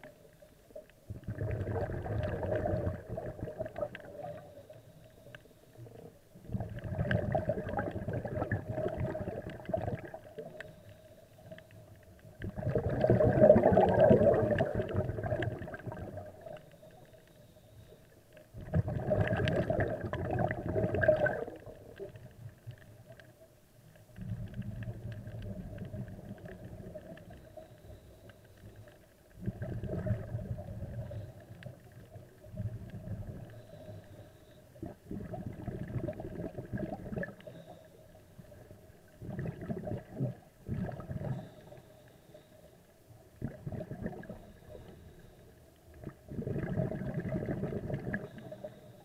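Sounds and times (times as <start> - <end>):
faint steady hum: 0.0 - 49.0
bubbling of exhaled air: 1.1 - 4.6, 6.4 - 10.6, 12.3 - 16.6, 18.5 - 22.8, 29.3 - 33.5, 34.8 - 37.8, 38.5 - 41.8, 43.4 - 44.9, 45.9 - 48.8.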